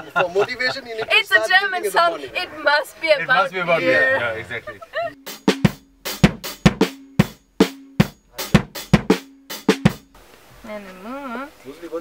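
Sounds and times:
drum kit playing: 5.1 - 10.2.

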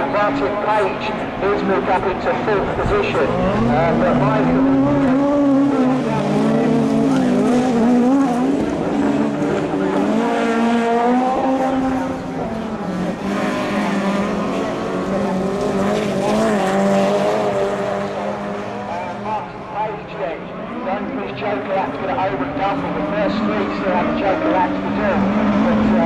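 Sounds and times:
race car engines revving: 0.0 - 26.0.

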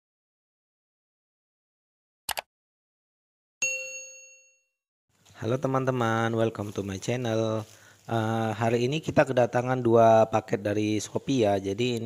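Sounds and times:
bell ding: 3.6 - 4.8.

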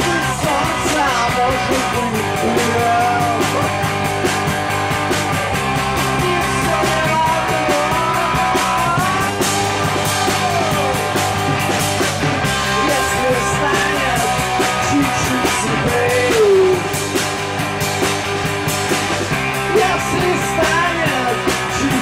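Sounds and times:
man singing: 0.0 - 3.9, 6.0 - 11.4, 12.6 - 17.1, 19.6 - 22.0
guitar: 0.0 - 22.0
steady driving beat: 0.0 - 22.0.

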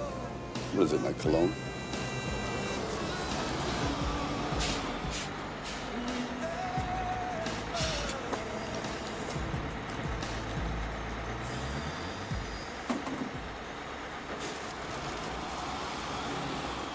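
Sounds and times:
background film music: 0.0 - 14.0
bus engine rumbling: 0.0 - 16.9
street traffic: 0.0 - 16.9.

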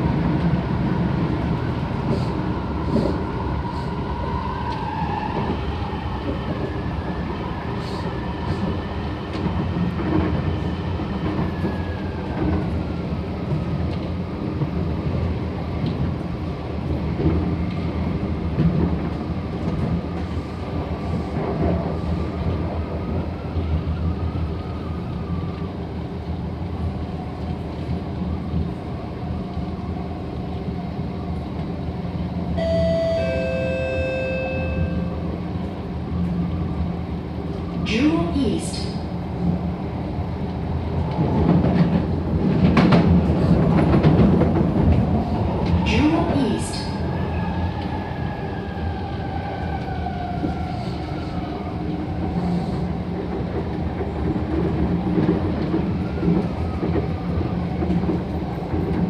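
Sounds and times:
train wheels rumbling on rail: 0.0 - 59.0
electronic chime: 32.6 - 35.1.

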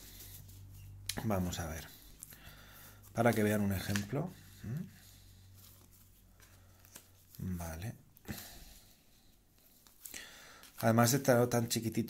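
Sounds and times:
card rustling on paper mat: 0.0 - 7.8
low room hum: 0.0 - 12.0.

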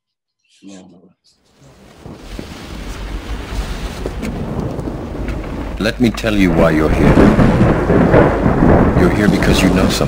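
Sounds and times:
steady rain: 1.5 - 10.0
low rolling thunder: 1.6 - 10.0.

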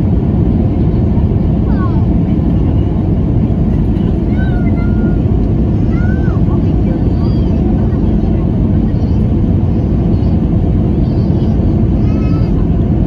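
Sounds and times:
jet engine and airflow rush: 0.0 - 13.0.

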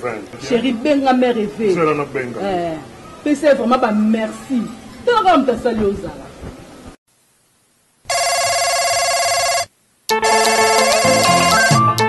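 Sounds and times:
electronic telephone ring: 8.1 - 11.8
synthesizer music: 10.1 - 12.0.

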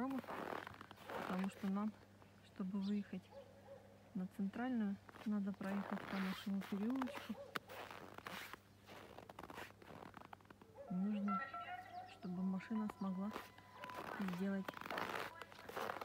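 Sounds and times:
footsteps crunching in snow: 0.0 - 1.9, 5.0 - 16.0
person speaking: 10.9 - 16.0.

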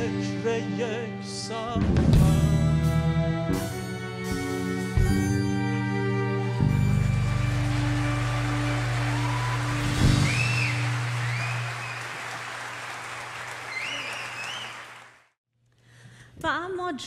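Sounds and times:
orchestra final chord: 6.2 - 11.8
crowd whistling: 6.7 - 15.2
audience applause: 6.7 - 15.4.

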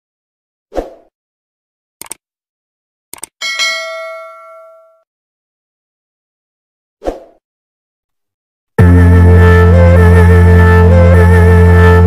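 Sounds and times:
clicks: 3.1 - 3.4
bell-like notification ding: 3.4 - 5.0.

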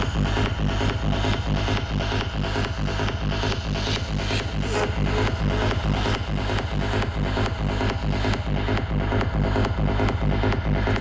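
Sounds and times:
psytrance kick drum: 0.0 - 11.0
rolling bassline: 0.0 - 11.0.

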